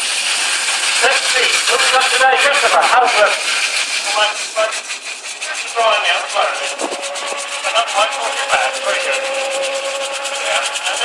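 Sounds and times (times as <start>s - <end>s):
people talking: 1.0s - 4.8s, 5.5s - 7.0s, 7.6s - 11.0s.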